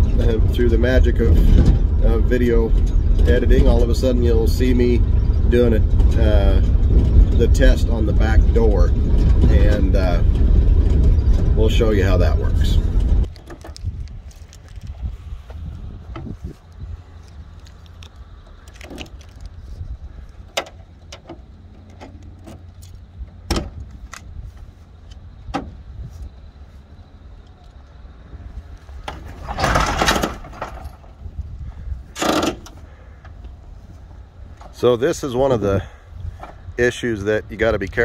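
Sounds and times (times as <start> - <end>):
van doors clicking and clunking: 0.0 - 14.9, 15.5 - 35.0
steady low rumble: 0.0 - 38.0
loud clattering: 1.1 - 13.8, 29.0 - 31.2.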